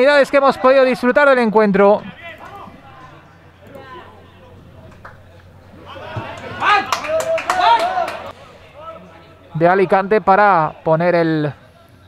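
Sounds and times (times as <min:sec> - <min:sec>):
distant shouts from players: 0:05.7 - 0:09.1.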